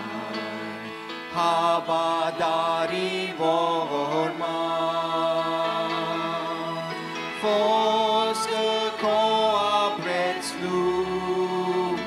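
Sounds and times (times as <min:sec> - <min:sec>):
vocal trio singing a hymn: 0:00.0 - 0:12.0.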